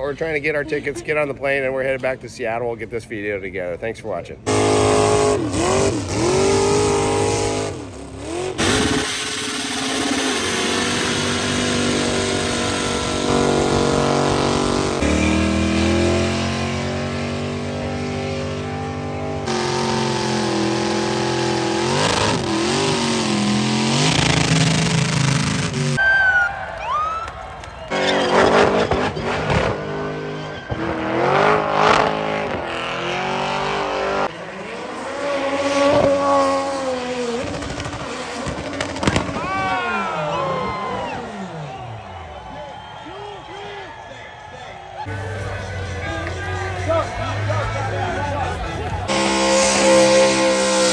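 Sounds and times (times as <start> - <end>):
car engines revving hard: 4.4 - 26.0, 27.9 - 42.0, 45.0 - 50.9
tyres spinning and squealing: 27.7 - 32.6.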